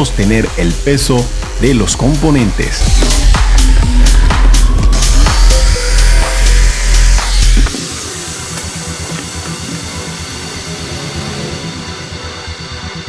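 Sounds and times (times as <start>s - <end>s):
electronic music: 0.0s - 13.0s
jigsaw cutting: 5.1s - 10.3s.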